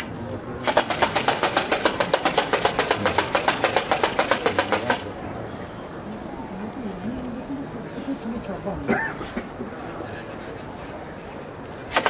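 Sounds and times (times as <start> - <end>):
rapid sharp clacks: 0.6 - 5.2.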